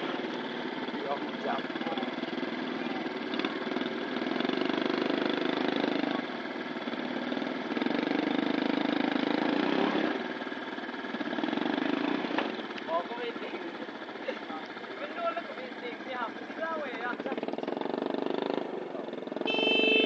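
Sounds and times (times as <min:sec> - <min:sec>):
small motorcycle engine revving: 0:00.0 - 0:20.0.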